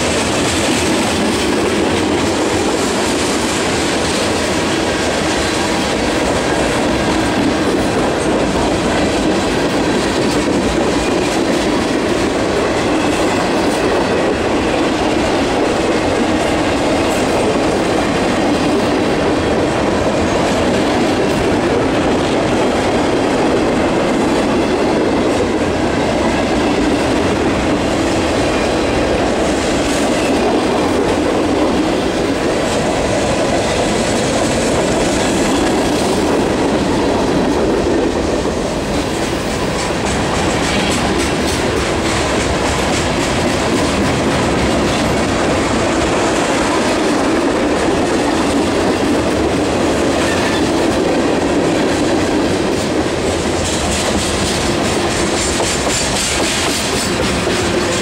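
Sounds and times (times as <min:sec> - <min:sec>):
train wheels rumbling on rails: 0:00.0 - 0:58.0
wheels clacking over rail joints: 0:00.0 - 0:58.0.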